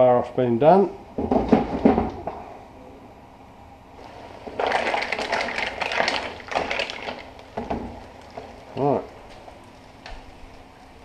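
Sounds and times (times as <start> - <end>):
mussel shells clattering in pan: 4.5 - 8.6.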